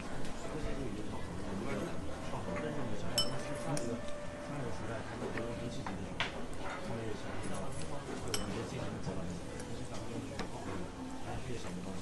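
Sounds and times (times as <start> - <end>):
restaurant chatter: 0.0 - 12.0
tableware clinking: 3.1 - 3.8, 8.2 - 8.7.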